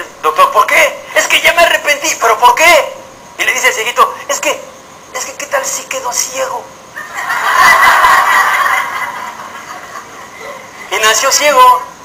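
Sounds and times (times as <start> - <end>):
audience laughing: 7.0 - 10.9.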